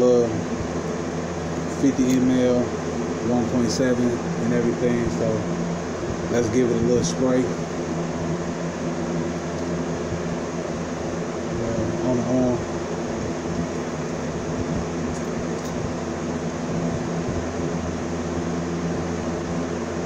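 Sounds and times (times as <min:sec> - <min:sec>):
low machine hum: 0:00.0 - 0:20.0.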